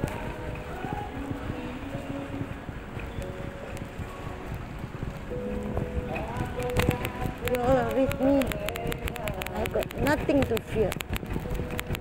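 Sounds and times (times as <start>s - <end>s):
shop background music: 0.0s - 12.0s
trolley rolling on tiled floor: 0.0s - 12.0s.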